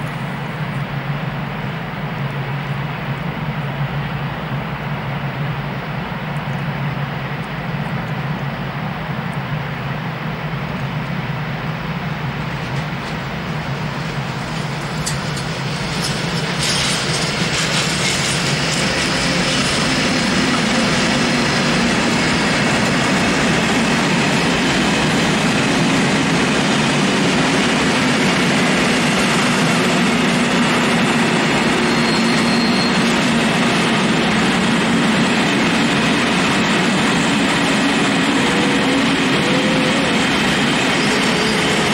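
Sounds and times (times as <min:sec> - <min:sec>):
electric locomotive passing: 0:00.0 - 0:41.9
freight train rolling past: 0:00.0 - 0:41.9
high squeal: 0:31.6 - 0:33.3, 0:38.2 - 0:41.9.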